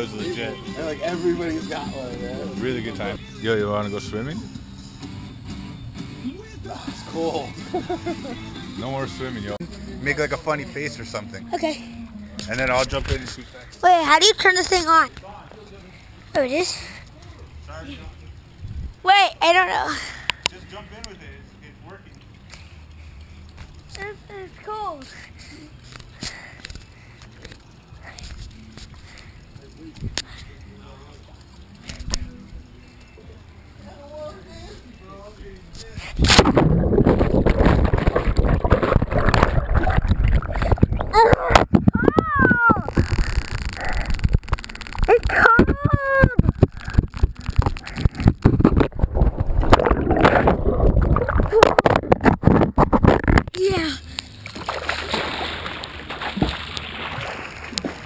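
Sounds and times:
pool water splashing: 0.0 - 4.4, 13.9 - 52.8, 53.6 - 58.0
short voices crying out: 41.1 - 43.1, 45.1 - 46.5.

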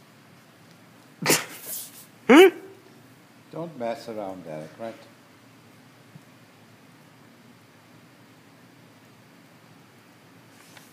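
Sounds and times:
man humming hmm: 2.3 - 2.8.

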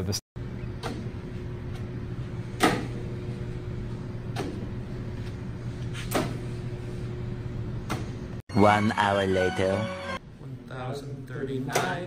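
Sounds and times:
room hum: 0.4 - 12.0.

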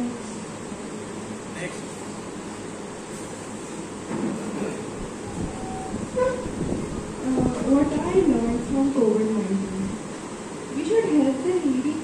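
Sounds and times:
steady background noise: 0.0 - 12.0
vehicle horn toots: 5.3 - 6.5.

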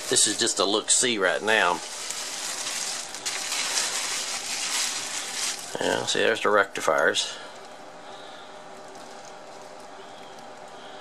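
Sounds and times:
bubble wrap rustling and crinkling: 0.0 - 6.3, 8.7 - 10.7.

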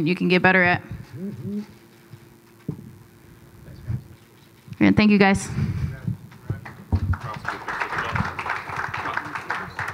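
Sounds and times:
voices: 0.1 - 1.8
microphone knocking on table: 6.1 - 7.2
people clapping: 6.3 - 9.9.

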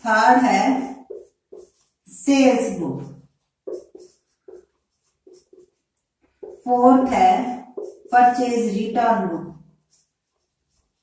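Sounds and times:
marker pen writing on whiteboard: 0.0 - 11.0.

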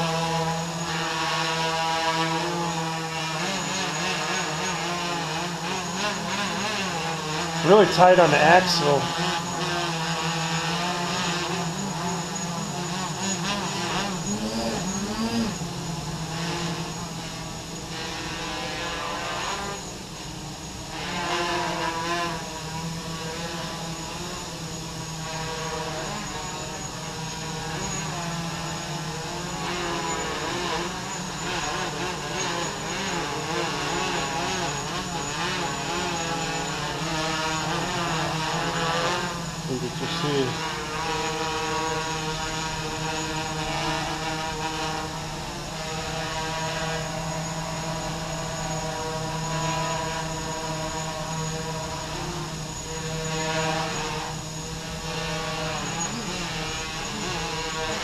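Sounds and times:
drone propellers whirring: 0.0 - 58.0.

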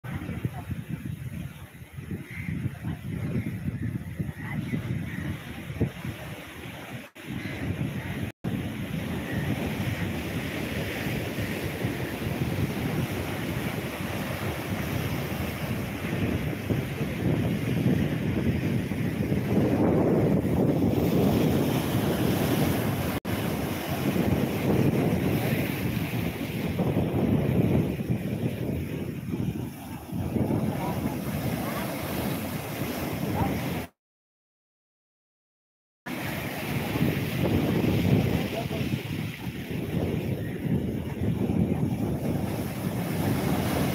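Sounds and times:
wind buffeting microphone: 0.0 - 33.9, 36.1 - 43.9.

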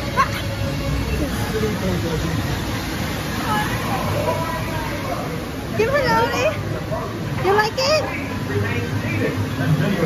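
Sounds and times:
rushing river rapids: 0.0 - 10.0.

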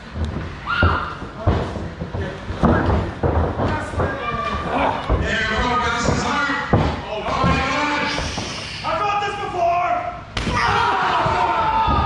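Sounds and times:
body crashing onto wrestling ring: 10.4 - 12.0
raised voices: 10.4 - 12.0.

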